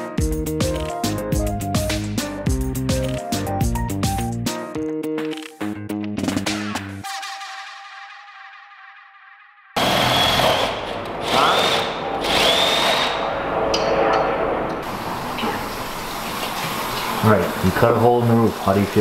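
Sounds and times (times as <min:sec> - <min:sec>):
power drill boring into wood: 0:09.8 - 0:13.2.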